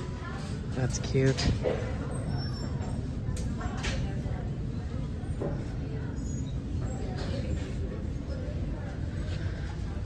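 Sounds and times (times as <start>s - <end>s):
low indoor background rumble: 0.0s - 10.0s.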